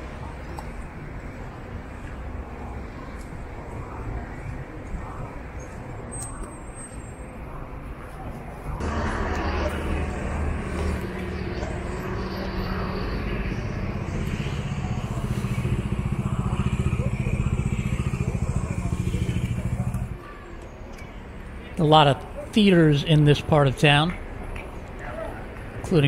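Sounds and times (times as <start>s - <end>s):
traffic noise: 0.0s - 26.0s
vehicle engine running: 8.8s - 20.2s.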